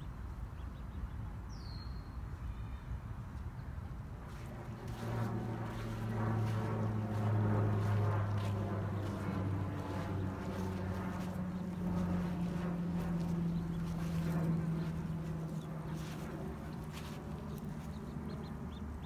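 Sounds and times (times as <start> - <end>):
engine running steadily: 4.1 - 19.0.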